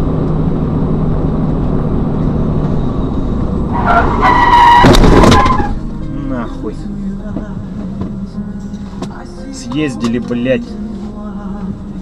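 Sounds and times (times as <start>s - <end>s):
car engine and road noise: 0.0s - 12.0s
tyre screech: 2.7s - 5.9s.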